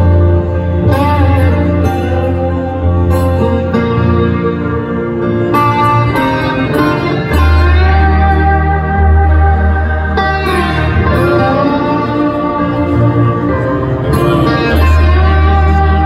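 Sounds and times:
piano chords: 0.0 - 16.0
sustained guitar notes: 0.0 - 16.0.

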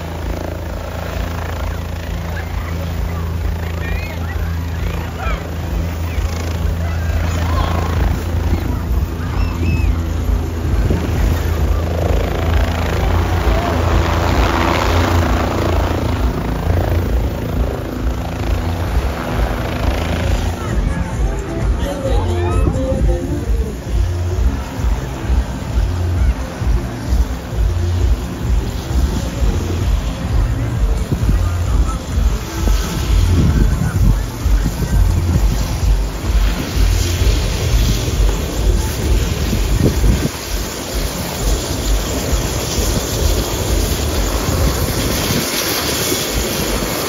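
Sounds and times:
helicopter rotor and engine drone: 0.0 - 47.0
wind buffeting the microphone: 5.7 - 25.4, 26.2 - 47.0.

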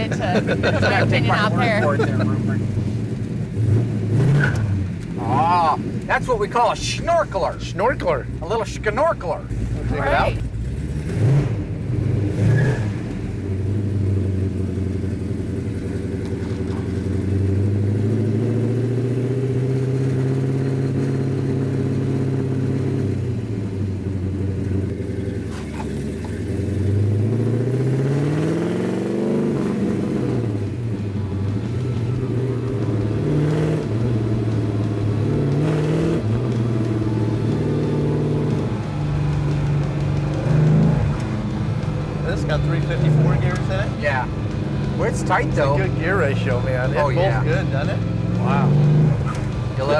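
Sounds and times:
car engine accelerating: 0.0 - 49.9.

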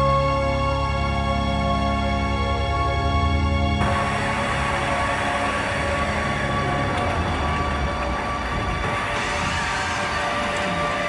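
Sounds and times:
industrial electronic music: 0.0 - 11.0.

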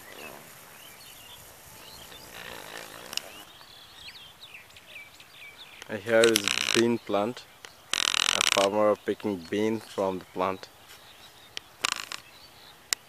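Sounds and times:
birds chirping: 0.0 - 13.0
outdoor hiss: 0.0 - 13.0
sharp click: 5.8 - 7.0.

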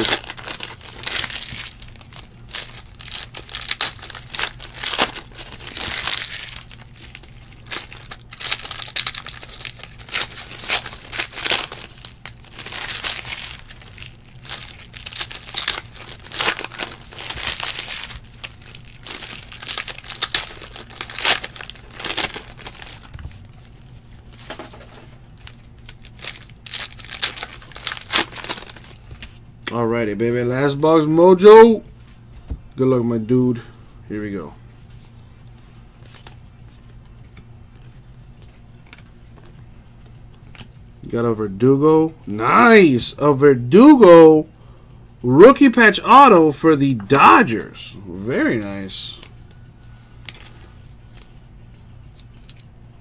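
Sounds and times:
foil wrappers crinkling and tearing: 0.0 - 29.4, 50.2 - 51.4, 52.0 - 52.7.

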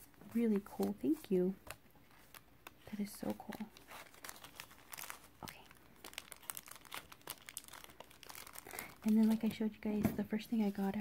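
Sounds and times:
paper and plastic packaging crinkling: 0.0 - 11.0.

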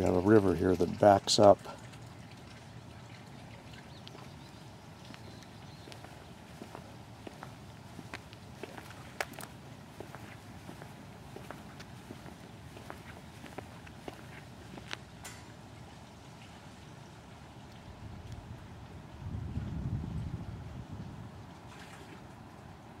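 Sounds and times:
footsteps on concrete: 5.1 - 15.1.

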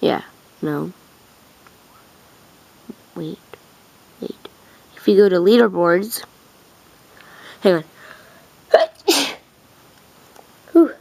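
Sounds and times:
person sneezing: 8.7 - 9.4.

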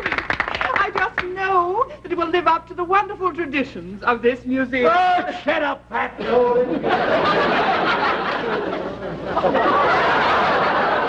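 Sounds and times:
studio audience laughing: 6.4 - 11.0.

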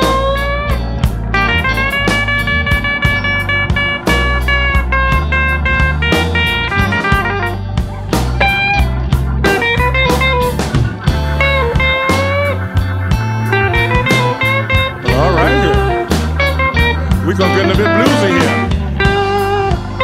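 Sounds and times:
bass line: 0.0 - 20.0
drum beat: 0.0 - 20.0
electric guitar lead lines: 0.0 - 20.0.

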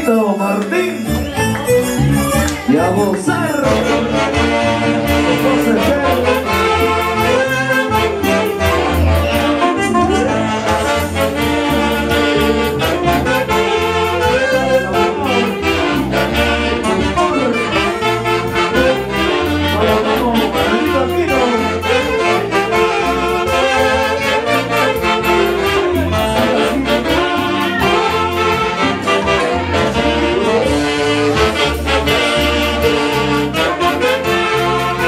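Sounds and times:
saxophones playing a lively melody: 0.0 - 35.0
pulsing bass beat: 1.2 - 35.0.

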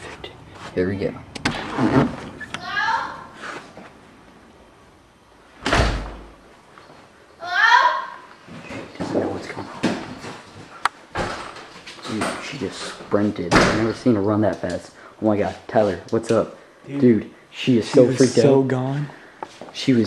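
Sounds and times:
girl screaming: 2.6 - 3.3, 7.4 - 8.3
door slamming: 5.6 - 6.3, 13.5 - 14.0.

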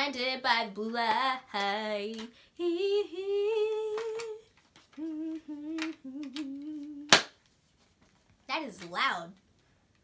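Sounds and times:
girl humming: 5.0 - 7.1.

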